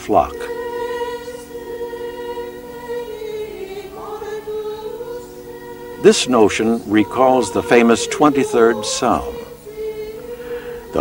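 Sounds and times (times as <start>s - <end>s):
choir holding a chord: 0.0s - 11.0s.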